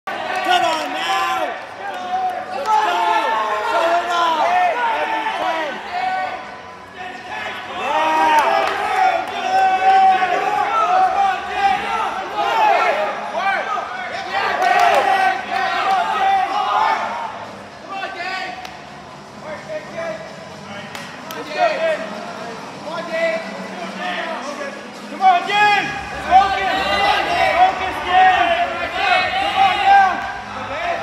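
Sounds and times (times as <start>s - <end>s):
people shouting and cheering: 0.1s - 20.3s, 20.9s - 31.0s.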